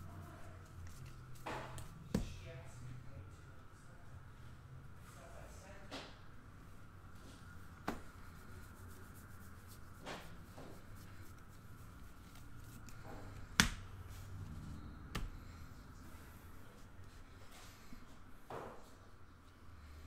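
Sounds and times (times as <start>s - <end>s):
cards rubbing and sliding: 0.1s - 2.0s, 7.9s - 13.6s.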